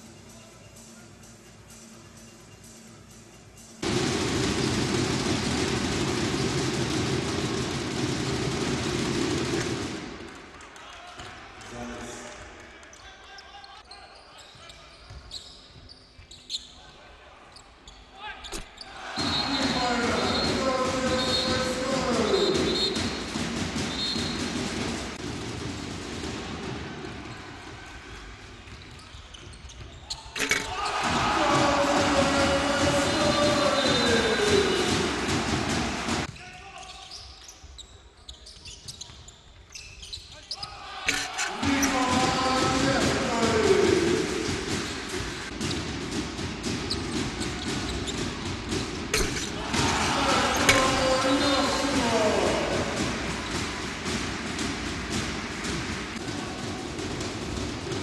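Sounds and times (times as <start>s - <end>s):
crowd cheering: 3.8s - 13.8s, 18.2s - 28.8s, 30.4s - 36.3s, 40.6s - 46.8s, 47.4s - 58.0s.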